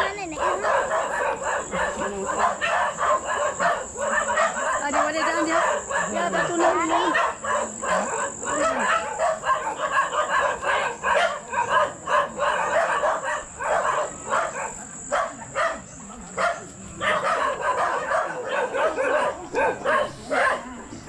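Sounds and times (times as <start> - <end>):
small dogs yapping: 0.0 - 21.0.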